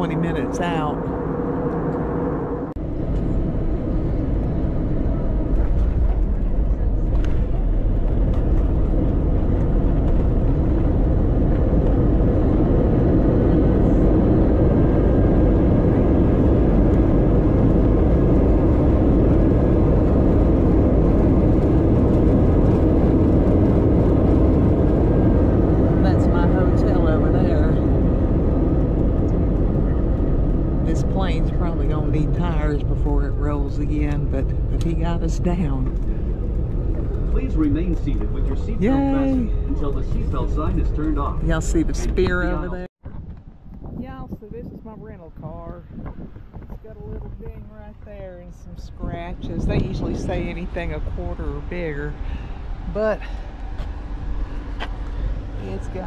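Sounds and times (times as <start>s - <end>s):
jet engine cabin roar: 0.0s - 56.0s.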